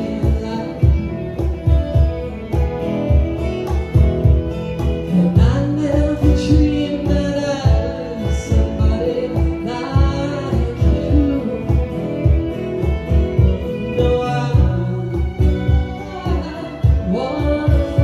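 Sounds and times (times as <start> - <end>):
person singing: 0.0 - 1.7, 5.0 - 18.0
country band playing: 0.0 - 18.0.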